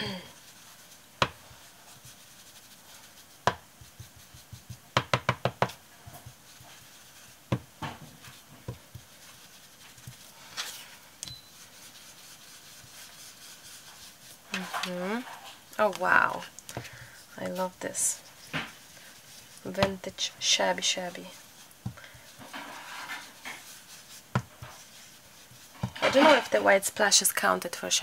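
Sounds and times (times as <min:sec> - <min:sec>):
tool tapping on paper: 0:03.4 - 0:05.8.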